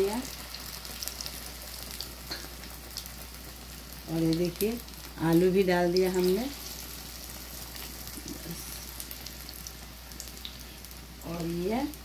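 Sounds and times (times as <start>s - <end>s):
deep-frying sizzle and crackling: 0.0s - 12.0s.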